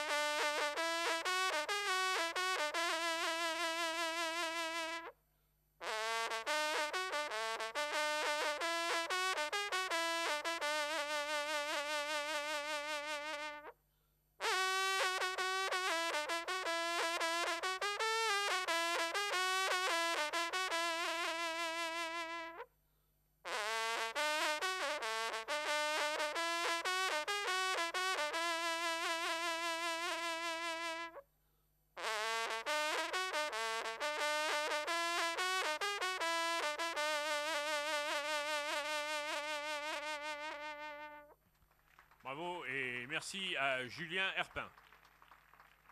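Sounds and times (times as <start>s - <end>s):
hunting horn fanfare: 0.0s - 5.1s, 5.8s - 13.7s, 14.4s - 22.6s, 23.5s - 31.2s.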